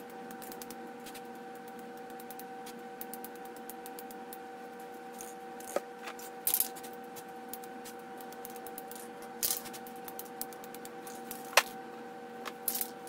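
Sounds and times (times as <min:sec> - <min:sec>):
steady background hum: 0:00.0 - 0:13.0.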